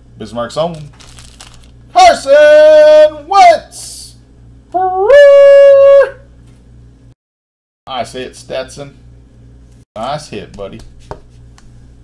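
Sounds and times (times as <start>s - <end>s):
faint hum: 0.0s - 7.2s
man yelling excitedly: 1.9s - 4.2s, 4.8s - 6.2s.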